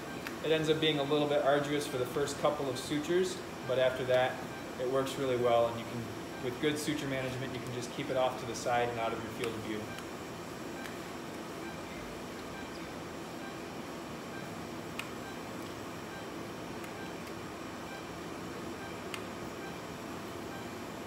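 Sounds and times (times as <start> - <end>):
faint hum tones: 0.0 - 21.0.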